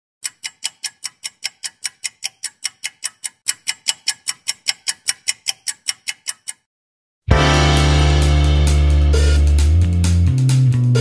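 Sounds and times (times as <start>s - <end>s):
rapid sharp ticking clicks: 0.2s - 6.7s.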